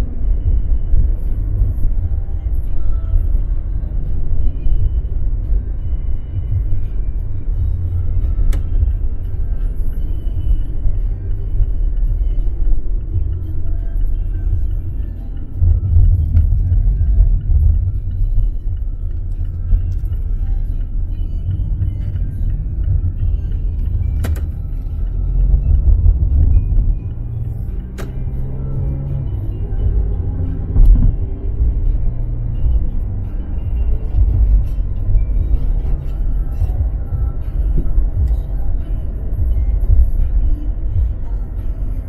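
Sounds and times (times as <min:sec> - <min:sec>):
car interior road and engine noise: 0:00.0 - 0:42.0.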